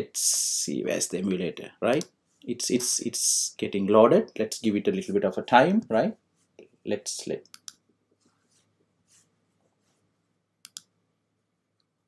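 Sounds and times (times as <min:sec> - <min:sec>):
sharp clicks: 0:07.5 - 0:07.8, 0:10.6 - 0:10.9.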